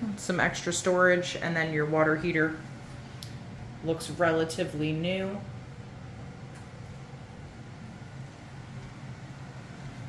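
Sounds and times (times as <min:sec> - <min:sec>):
faint hum: 0:00.0 - 0:10.0
low rumble and hiss: 0:00.0 - 0:10.0.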